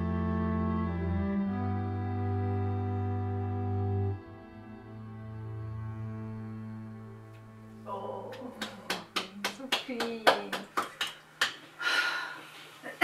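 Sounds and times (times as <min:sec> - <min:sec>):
voices: 0:07.9 - 0:10.8.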